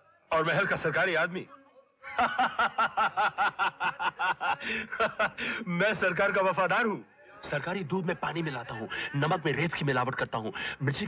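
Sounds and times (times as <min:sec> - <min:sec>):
man speaking: 0:00.3 - 0:01.8, 0:04.4 - 0:11.0
man laughing heartily: 0:02.1 - 0:05.7.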